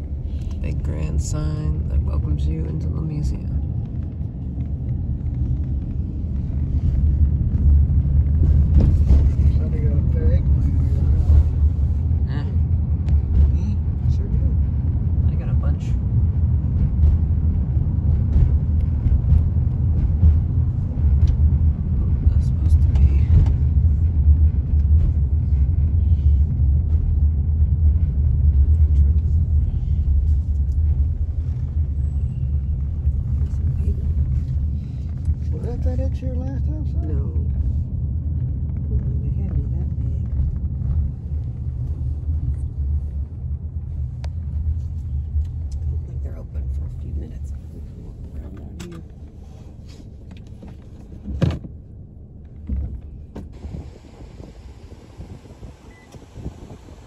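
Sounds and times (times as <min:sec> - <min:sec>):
motor vehicle rumbling: 0:00.0 - 0:57.0.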